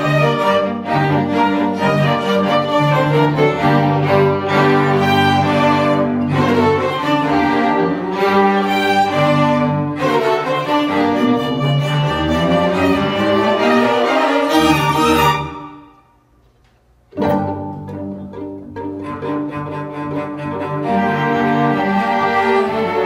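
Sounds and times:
string orchestra playing: 0.0s - 16.1s, 17.1s - 23.0s.

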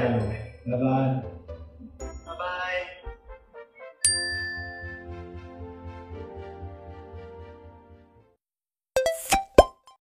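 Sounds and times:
bright chime ringing: 4.0s - 5.1s.

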